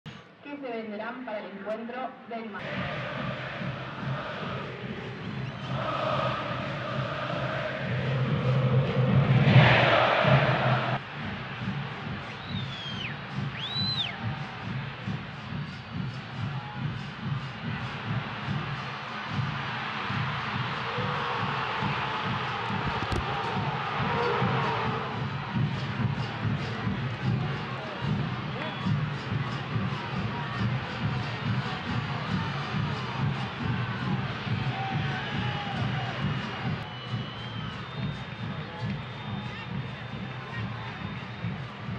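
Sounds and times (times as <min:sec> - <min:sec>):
stadium crowd noise: 0:00.1 - 0:41.9.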